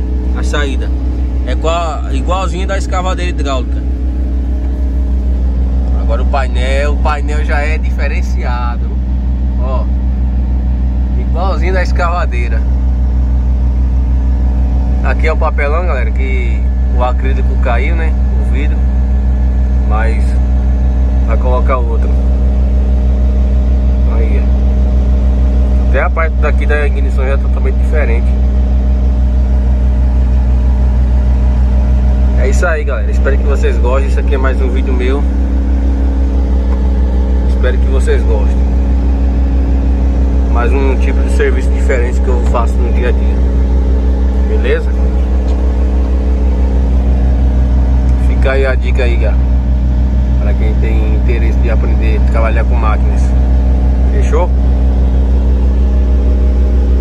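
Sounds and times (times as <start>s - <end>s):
diesel engine running steadily: 0.0s - 57.0s.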